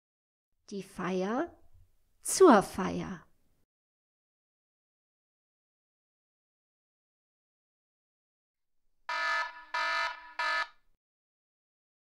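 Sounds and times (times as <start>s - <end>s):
wrong-answer buzzer: 9.1s - 10.8s.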